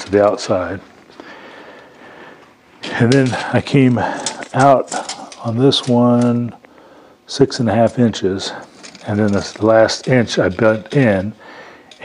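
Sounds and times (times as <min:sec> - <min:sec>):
man talking: 0:00.0 - 0:00.9, 0:02.8 - 0:06.6, 0:07.3 - 0:11.4.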